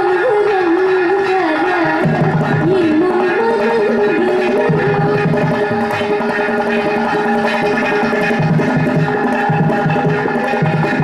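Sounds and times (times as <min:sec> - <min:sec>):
ghatam strokes: 0:00.0 - 0:11.0
mridangam drumming: 0:00.0 - 0:11.0.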